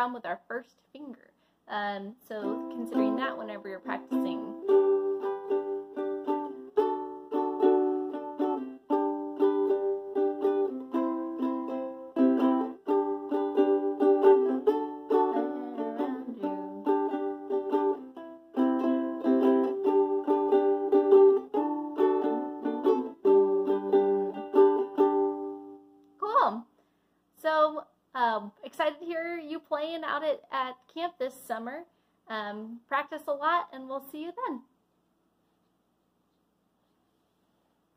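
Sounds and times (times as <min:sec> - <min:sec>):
ukulele strummed: 0:02.3 - 0:26.0.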